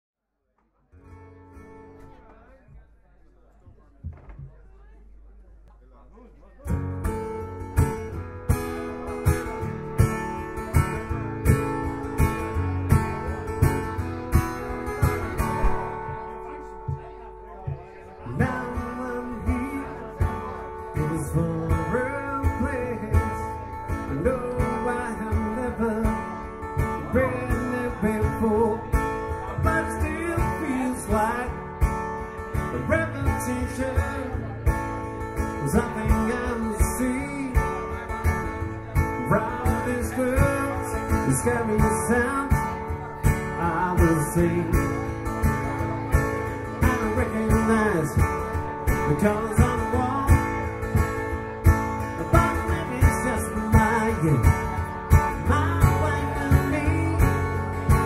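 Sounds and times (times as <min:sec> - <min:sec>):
acoustic guitar strumming: 0:01.0 - 0:02.4, 0:06.7 - 0:58.0
man singing: 0:07.8 - 0:58.0.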